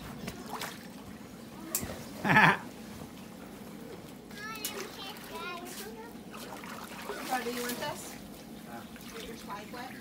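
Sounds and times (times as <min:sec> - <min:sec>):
water splashing and trickling: 0:00.0 - 0:02.0, 0:03.9 - 0:10.0.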